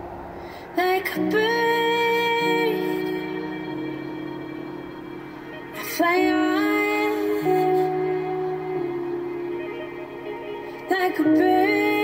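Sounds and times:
pop song on radio: 0.8 - 12.0
sustained instrumental chords: 1.2 - 12.0.

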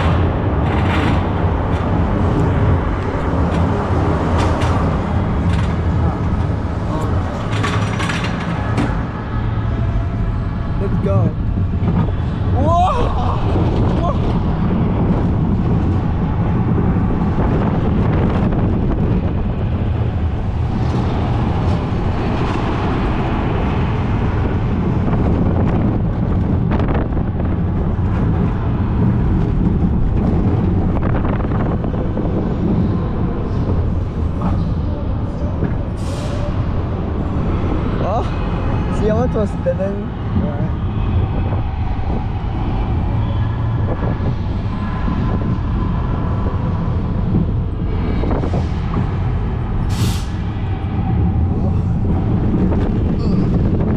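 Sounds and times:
roller coaster wheels rumbling: 0.0 - 53.9
wind buffeting microphone: 0.0 - 53.9.

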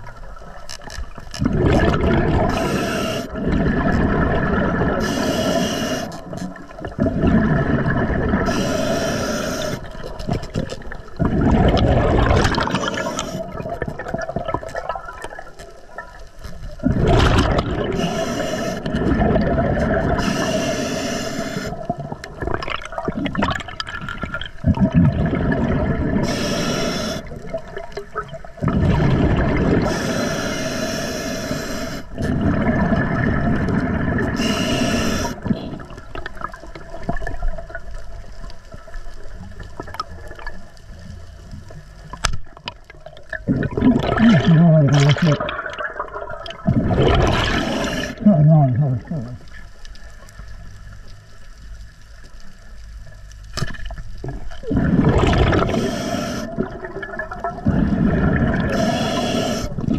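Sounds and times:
rumbling exhaust bubbles: 1.4 - 2.6, 3.3 - 5.0, 6.8 - 8.5, 10.2 - 15.3, 16.8 - 18.1, 18.8 - 20.2, 21.8 - 26.4, 27.4 - 30.2, 43.4 - 49.4, 54.2 - 59.9
regulator inhalation hiss: 2.5 - 3.4, 5.0 - 6.5, 8.5 - 10.0, 12.8 - 13.6, 17.9 - 18.9, 20.1 - 21.9, 26.2 - 27.4, 29.9 - 32.2, 34.3 - 35.5, 47.6 - 48.2, 55.6 - 56.6, 58.7 - 59.9.

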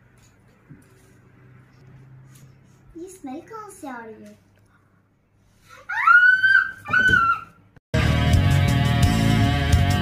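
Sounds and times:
high-pitched wail: 5.9 - 7.6
heavy rock guitar music: 8.0 - 10.0.

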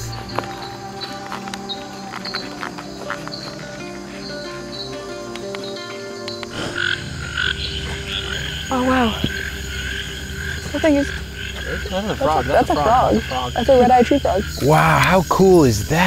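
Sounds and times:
frogs calling: 0.0 - 16.0
low background music: 0.0 - 16.0.

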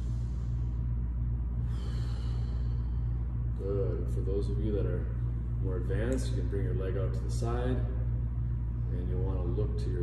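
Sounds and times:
low room hum and rumble: 0.0 - 10.0.

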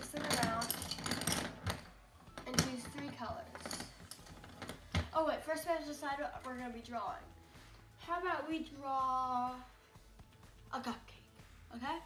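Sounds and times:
colored pencils clattering on plastic: 0.0 - 5.1.

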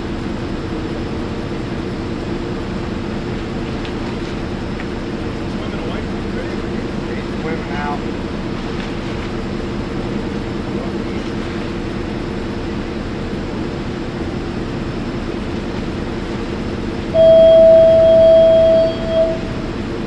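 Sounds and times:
boat engine humming: 0.0 - 20.0
loud single-pitched tone: 17.1 - 19.8.

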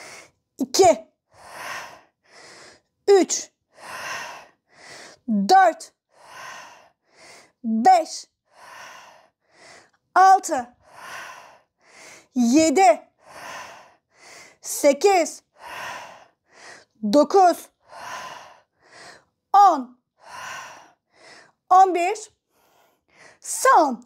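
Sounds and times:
quick breaths: 1.3 - 3.0, 3.7 - 5.2, 6.1 - 7.6, 8.5 - 10.0, 10.8 - 12.4, 13.2 - 14.6, 15.5 - 17.0, 17.8 - 19.4, 20.2 - 21.6.

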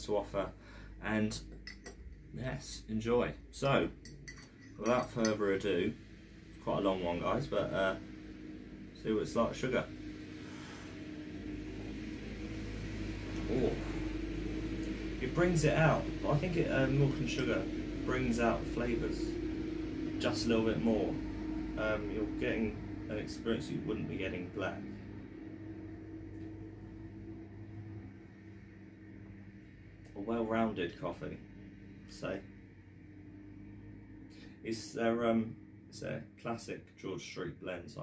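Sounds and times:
low hum: 0.0 - 38.0
faint held tone: 0.5 - 36.0.

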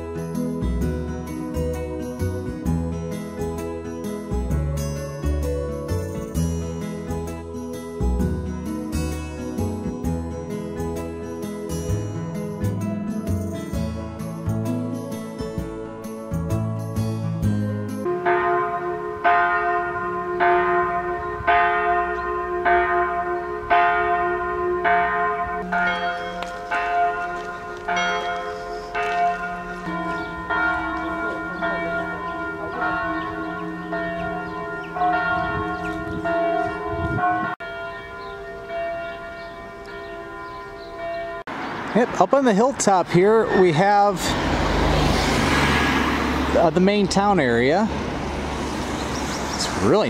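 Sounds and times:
church bells ringing: 0.0 - 50.0.

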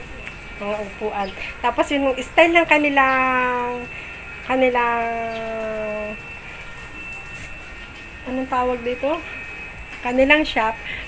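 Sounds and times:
faint steady high tone: 0.0 - 11.0.

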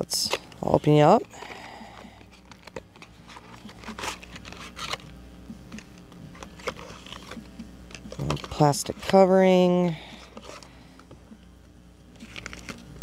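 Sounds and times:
cardboard and plastic packaging rustling: 0.0 - 5.1, 5.7 - 11.2, 12.2 - 13.0.

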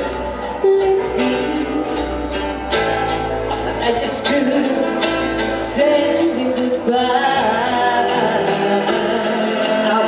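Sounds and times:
woman singing a slow ballad: 0.0 - 2.7, 3.7 - 10.0
backing band with plucked guitar: 0.0 - 10.0.

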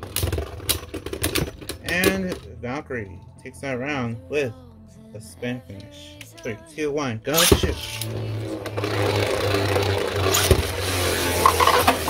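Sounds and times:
tops clacking together: 0.0 - 2.5, 7.4 - 12.0
spinning tops whirring: 7.4 - 12.0.

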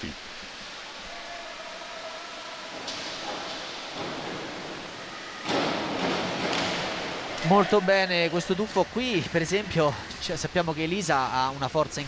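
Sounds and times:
indoor pool hall noise: 0.0 - 12.0.

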